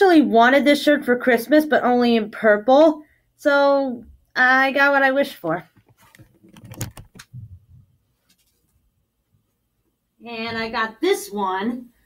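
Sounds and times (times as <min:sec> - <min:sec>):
camera handling clicks and knocks: 0:05.8 - 0:07.3.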